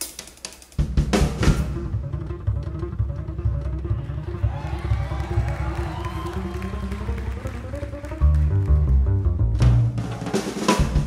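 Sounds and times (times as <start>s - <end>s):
jazz band playing: 0.0s - 11.0s
plucked upright bass: 1.0s - 11.0s.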